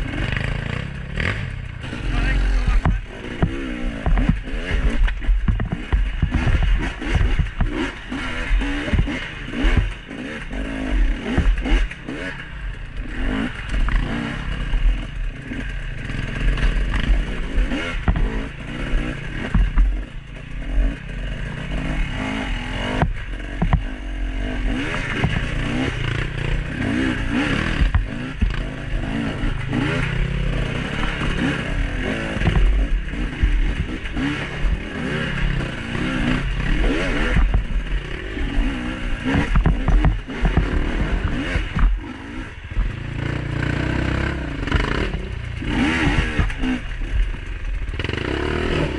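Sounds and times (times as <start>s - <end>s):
dirt bike engine revving: 0.0s - 48.9s.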